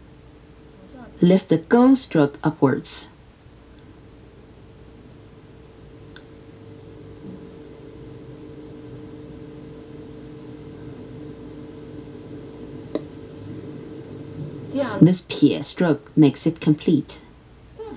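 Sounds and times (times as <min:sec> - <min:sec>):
low electrical hum: 0:00.0 - 0:17.9.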